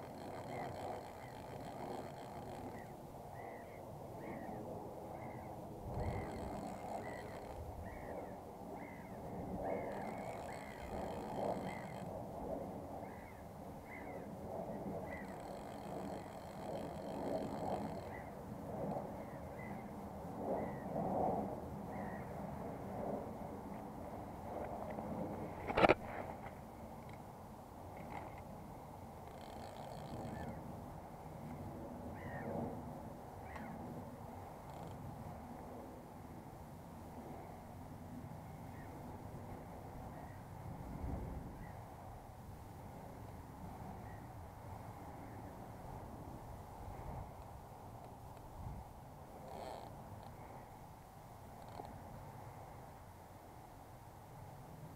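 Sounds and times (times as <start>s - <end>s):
birds calling: 0.0s - 12.1s
wind: 0.0s - 54.9s.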